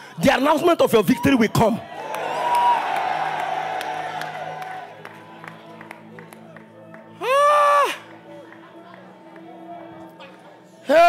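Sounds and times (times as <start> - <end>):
congregation cheering and shouting: 1.0 - 8.3
low sustained music: 2.2 - 11.0.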